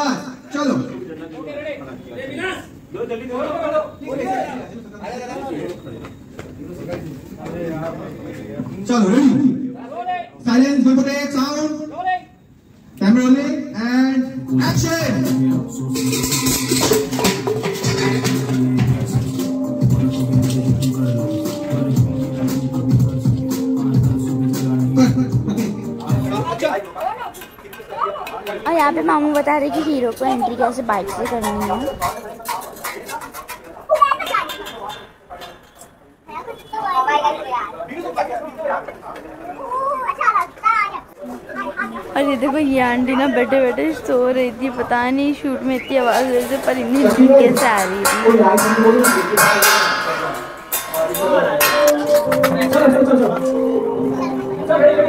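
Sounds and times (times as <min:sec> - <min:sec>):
men chattering: 0:00.9 - 0:11.2, 0:14.2 - 0:36.2, 0:37.1 - 0:40.2, 0:41.1 - 0:55.0
indistinct voices talking: 0:13.1 - 0:55.0.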